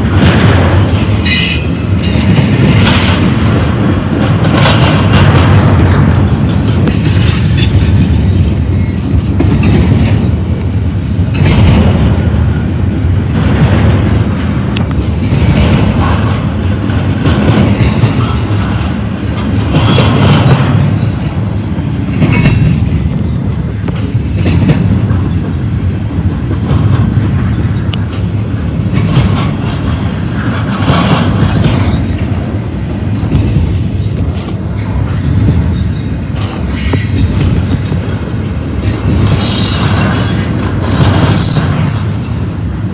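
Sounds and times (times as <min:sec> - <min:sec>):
train wheels rumbling on rail: 0:00.0 - 0:42.9.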